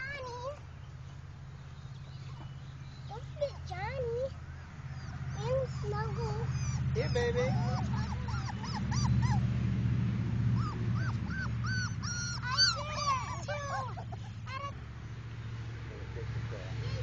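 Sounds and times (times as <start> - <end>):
puppies whining and yelping: 4.9 - 9.5, 10.5 - 14.7.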